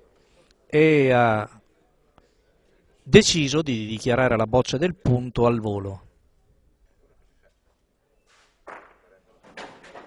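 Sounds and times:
balls knocking on hard court: 8.6s - 10.0s.

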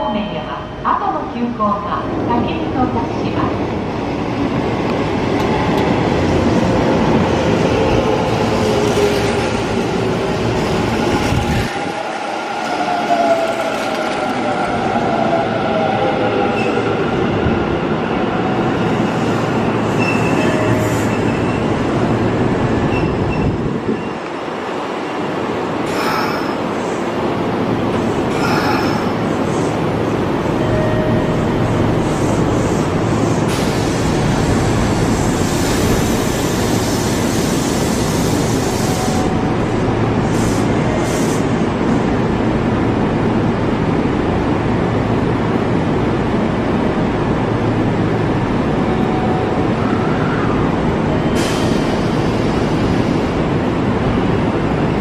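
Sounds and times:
train running noise: 1.6s - 55.0s
train wheel squeals: 19.9s - 21.8s, 22.9s - 24.2s.

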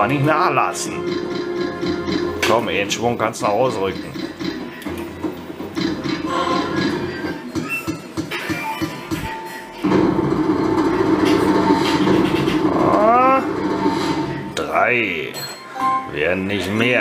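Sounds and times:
slot machine electronic music: 0.0s - 16.2s
slot machine jingle: 15.0s - 16.2s.

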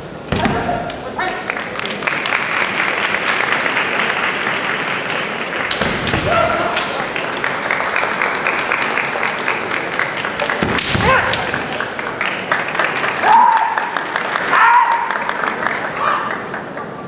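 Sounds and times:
loud strike and stamp impact: 0.3s - 0.8s, 5.7s - 7.1s, 10.6s - 11.7s
high-pitched yells: 13.2s - 13.8s, 14.5s - 15.1s.

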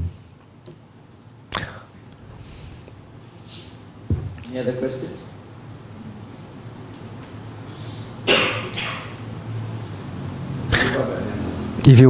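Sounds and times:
man clearing his throat: 8.2s - 9.2s, 10.7s - 11.1s.

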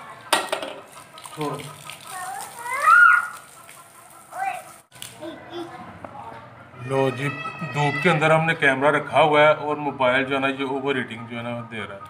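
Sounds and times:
water spraying from hose: 0.8s - 5.2s
toddler calling out: 2.1s - 3.4s, 6.8s - 8.4s.

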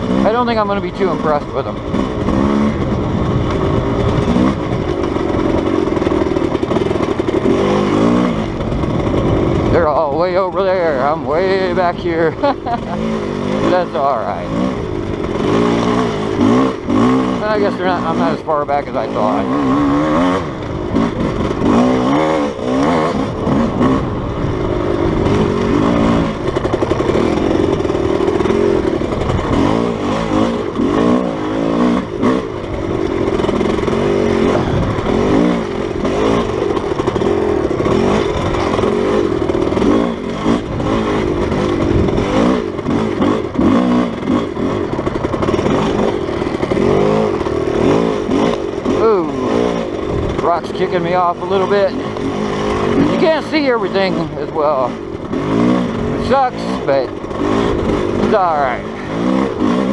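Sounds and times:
dirt bike engine revving: 0.0s - 59.9s
rough low rumble: 0.0s - 59.9s.

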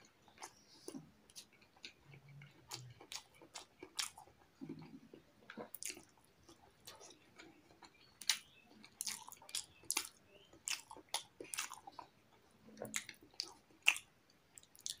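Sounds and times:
man chewing: 0.0s - 15.0s.

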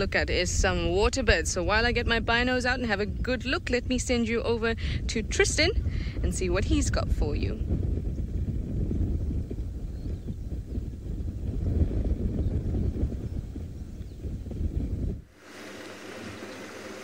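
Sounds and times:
wind buffeting microphone: 0.0s - 17.0s
vehicle engine humming: 15.3s - 17.0s.

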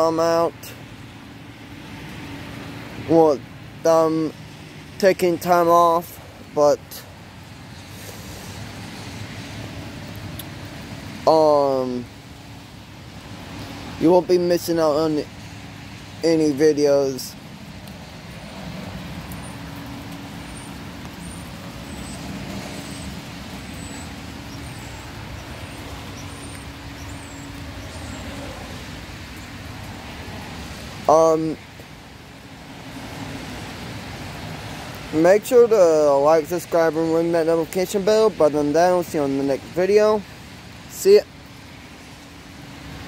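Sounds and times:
distant road traffic hum: 0.0s - 43.0s.

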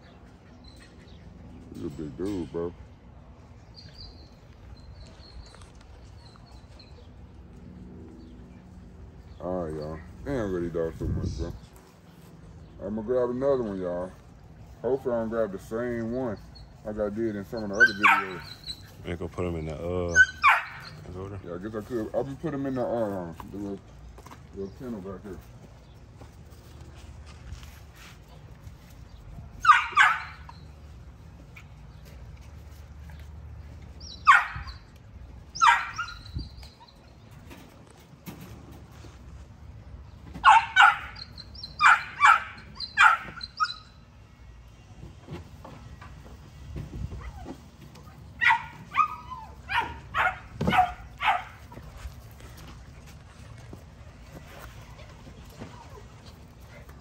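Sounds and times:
puppies yipping: 16.0s - 19.1s, 19.8s - 23.2s, 29.5s - 37.7s, 40.3s - 44.1s, 47.1s - 57.0s.

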